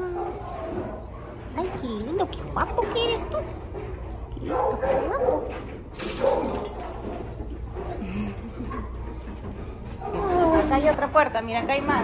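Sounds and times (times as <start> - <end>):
dog barking: 0.0 - 1.9, 4.4 - 7.0
dog whining: 10.0 - 10.8.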